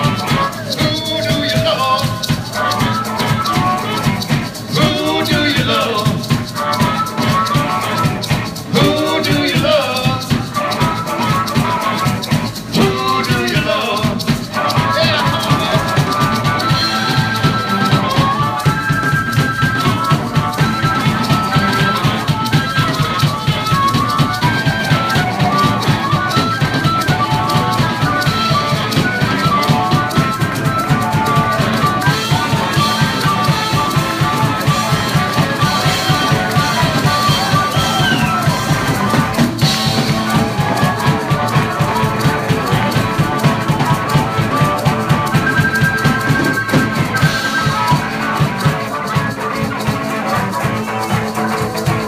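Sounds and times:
amplified harmonica: 0:00.0 - 0:52.0
drum-kit beat: 0:00.0 - 0:52.0
electric guitar: 0:00.0 - 0:52.0
live rock band playing: 0:00.0 - 0:52.0
maracas shaking: 0:00.0 - 0:52.0.

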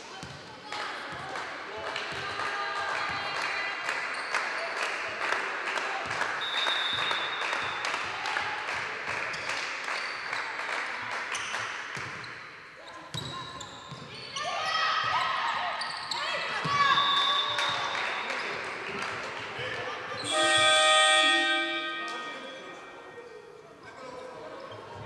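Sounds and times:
shoe squeaks: 0:15.8 - 0:17.5, 0:20.2 - 0:22.8
players calling out: 0:20.2 - 0:22.9.

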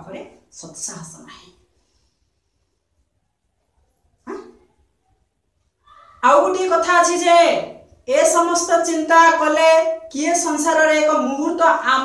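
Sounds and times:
dog bark: 0:04.2 - 0:05.3.

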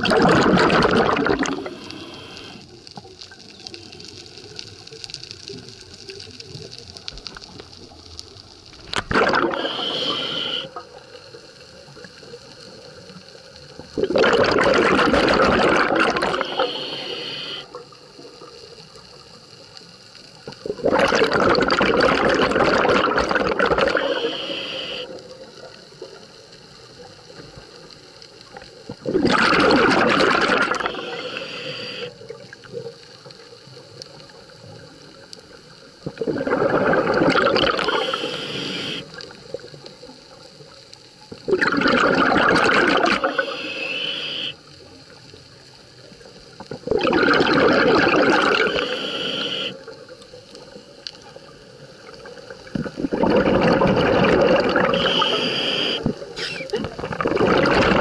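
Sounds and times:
exhaled bubbles underwater: 0:00.0 - 0:58.0
regulator hiss: 0:01.2 - 0:02.8, 0:09.4 - 0:10.8, 0:16.0 - 0:17.9, 0:23.8 - 0:25.2, 0:30.3 - 0:32.3, 0:37.6 - 0:39.3, 0:42.9 - 0:44.8, 0:48.4 - 0:50.0, 0:54.8 - 0:56.7.

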